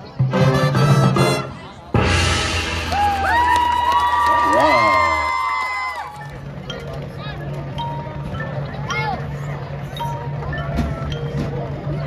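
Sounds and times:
marching band brass: 0.2 - 3.6
cymbal crash: 2.0 - 3.4.

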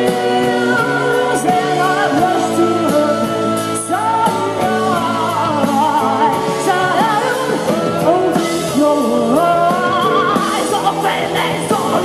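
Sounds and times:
indie rock band playing: 0.0 - 12.0
woman singing: 0.0 - 12.0.

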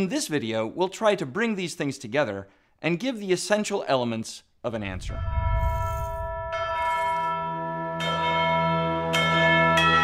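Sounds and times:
bells struck: 5.6 - 10.0.

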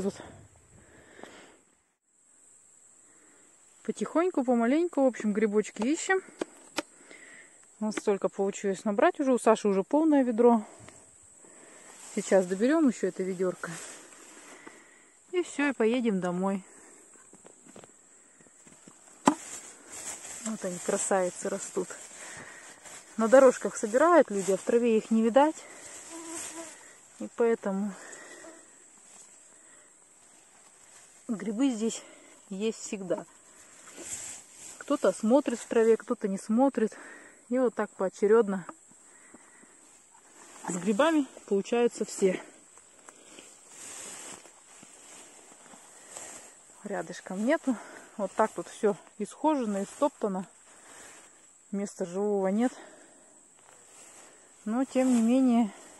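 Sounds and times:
rustling of grass and undergrowth: 3.0 - 55.9
footsteps swishing through grass: 19.1 - 27.2, 33.6 - 35.2, 42.9 - 48.8, 53.6 - 55.9.

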